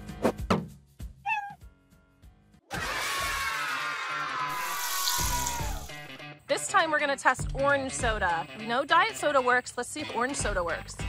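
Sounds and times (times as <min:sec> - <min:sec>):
cat meow effect: 0:01.2 - 0:01.6.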